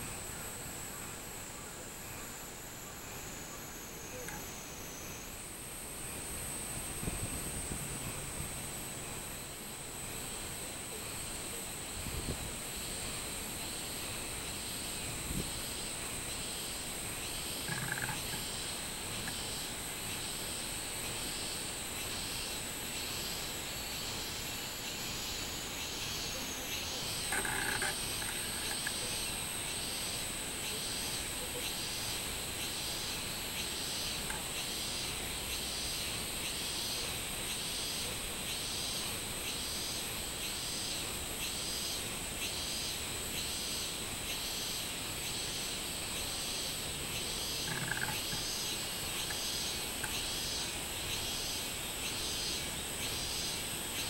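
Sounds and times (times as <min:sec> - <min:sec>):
cicadas pulsing song: 0:00.0 - 0:54.0
high-pitched insect drone: 0:00.0 - 0:54.0.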